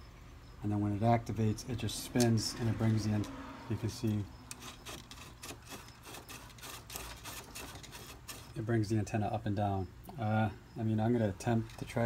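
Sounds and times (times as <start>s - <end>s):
antenna mechanism clicking and rubbing: 4.1s - 8.6s.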